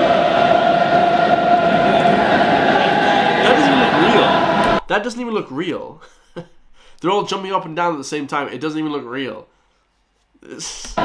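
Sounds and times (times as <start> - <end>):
stadium crowd chanting: 0.0 - 4.8.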